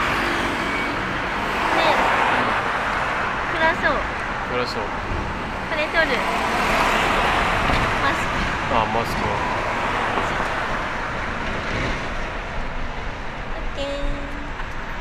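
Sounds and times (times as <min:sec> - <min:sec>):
passing road traffic: 0:00.0 - 0:15.0.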